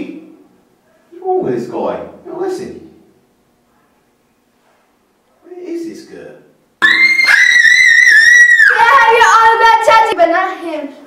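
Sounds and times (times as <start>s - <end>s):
lower-pitched yell: 6.8s - 9.5s
girls screaming: 6.8s - 9.6s.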